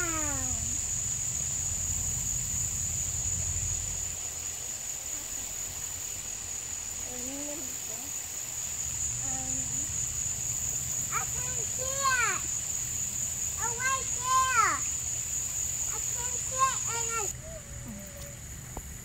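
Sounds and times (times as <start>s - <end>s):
high-pitched insect chorus: 0.0s - 19.0s
faint voices: 15.9s - 18.4s.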